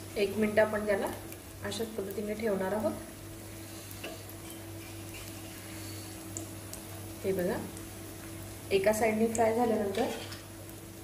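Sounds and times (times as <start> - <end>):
bread sizzling in oil: 0.0 - 11.0
low steady hum: 0.0 - 11.0.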